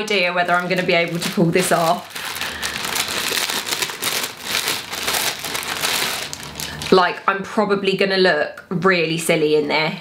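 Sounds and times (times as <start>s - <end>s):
packaging rustling and crackling: 0.1s - 7.0s.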